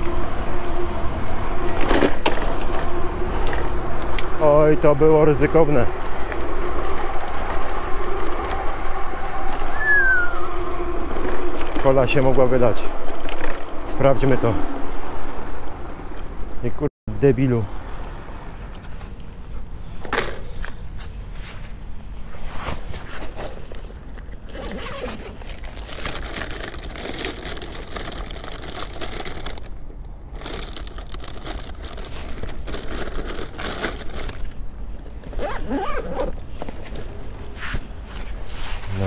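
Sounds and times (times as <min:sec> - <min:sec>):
backpack rustling and crinkling: 0:20.7 - 0:39.0
zipper: 0:24.5 - 0:25.6, 0:35.2 - 0:36.5.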